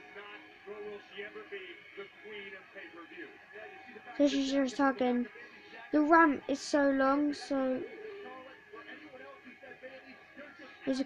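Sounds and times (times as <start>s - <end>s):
background music on tv: 0.0s - 11.0s
person speaking on tv: 0.0s - 11.0s.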